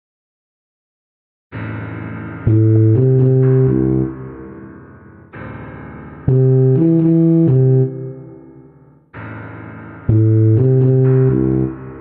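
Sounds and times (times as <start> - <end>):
synth and piano backing track: 1.6 - 12.0
low tuba notes: 2.5 - 4.7, 6.2 - 8.7, 10.1 - 12.0.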